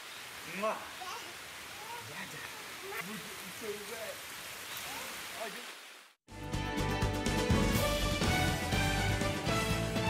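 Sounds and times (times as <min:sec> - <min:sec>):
steady rain: 0:00.0 - 0:06.2
news theme tune: 0:06.3 - 0:10.0.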